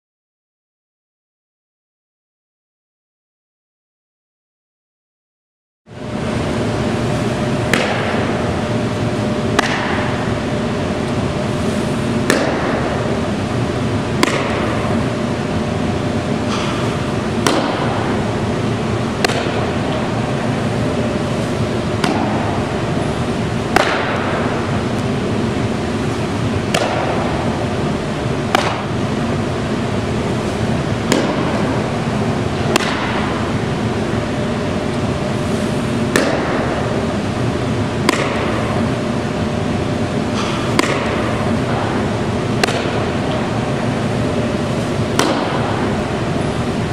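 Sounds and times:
ball smacking into mitt: 0:28.5 - 0:28.9.

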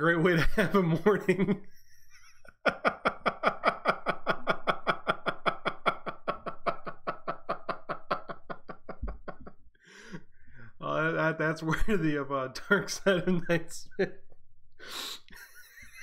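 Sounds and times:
man laughing hard: 0:00.4 - 0:09.5, 0:11.7 - 0:14.1, 0:15.3 - 0:16.0.

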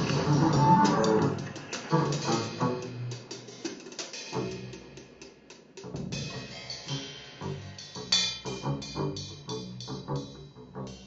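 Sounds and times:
bowed double bass: 0:00.0 - 0:03.3, 0:04.3 - 0:05.0, 0:05.8 - 0:11.0.

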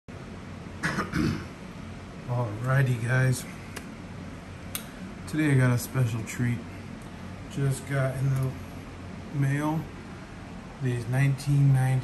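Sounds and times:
man coughing: 0:00.8 - 0:01.6.

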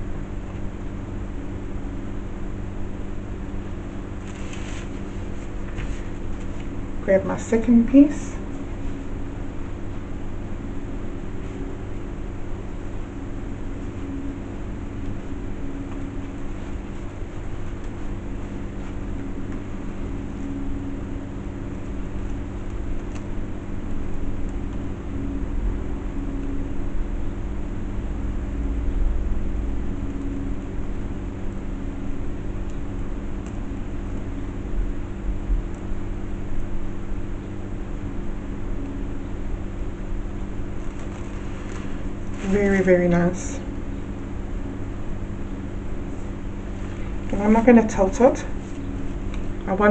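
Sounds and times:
steady mechanical hum: 0:00.0 - 0:49.9.

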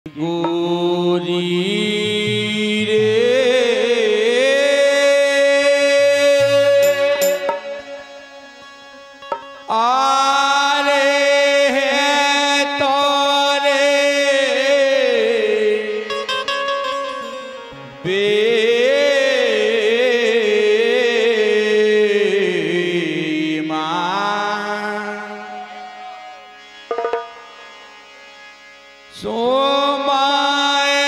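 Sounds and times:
man singing long wavering notes: 0:00.1 - 0:26.5
harmonium drone: 0:00.1 - 0:31.0.

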